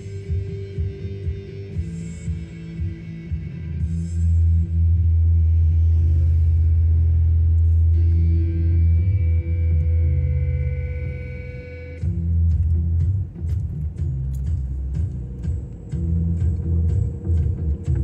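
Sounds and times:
music with deep bass line: 0.0 - 18.0.

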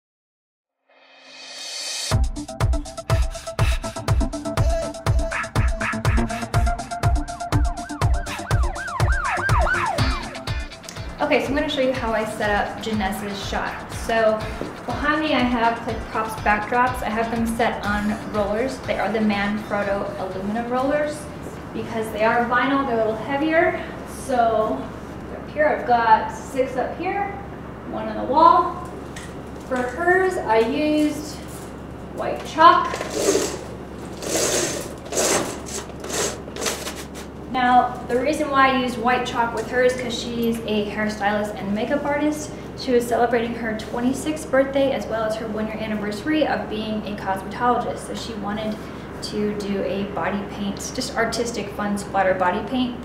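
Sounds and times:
electronic dance music: 2.1 - 11.2
kick drum: 2.1 - 11.2, 14.0 - 15.1
swooping siren-like synth: 5.0 - 10.8.

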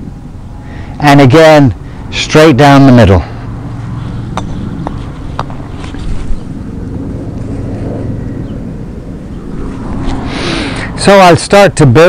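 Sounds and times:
low hum: 0.0 - 11.9
wind on microphone: 3.3 - 11.8.

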